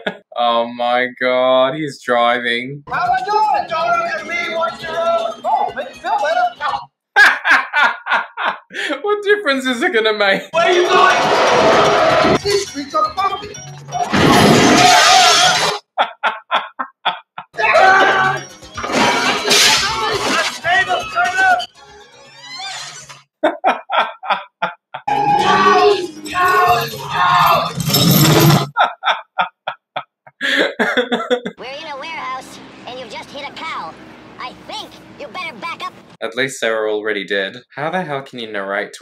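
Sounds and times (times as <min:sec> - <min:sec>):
hearty laughter: 0:00.0 - 0:00.4, 0:07.2 - 0:09.0, 0:15.6 - 0:17.6, 0:23.4 - 0:25.2, 0:28.7 - 0:31.6
objects crashing and shattering: 0:14.0 - 0:15.8, 0:18.0 - 0:21.0, 0:26.2 - 0:28.7
voices: 0:25.1 - 0:27.8, 0:31.6 - 0:38.2.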